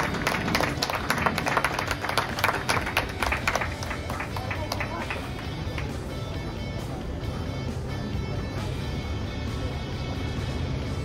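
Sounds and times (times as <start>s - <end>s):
spectators clapping: 0.0s - 6.1s
background music: 0.0s - 11.0s.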